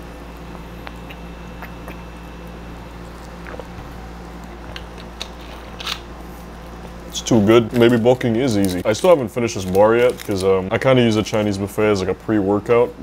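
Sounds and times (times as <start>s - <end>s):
low hum: 0.0s - 9.4s
eating and drinking mouth sounds: 0.8s - 2.1s, 3.1s - 4.7s.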